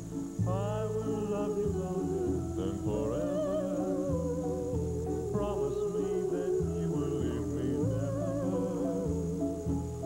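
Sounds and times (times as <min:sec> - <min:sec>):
faint high-pitched tape whine: 0:00.0 - 0:10.0
person singing with vibrato: 0:00.1 - 0:10.0.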